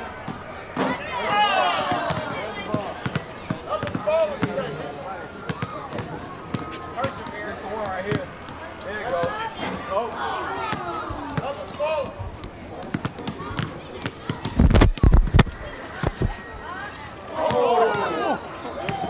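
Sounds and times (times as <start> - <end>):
basketball bouncing on a court: 1.8 - 4.7, 5.4 - 9.4, 10.7 - 15.1.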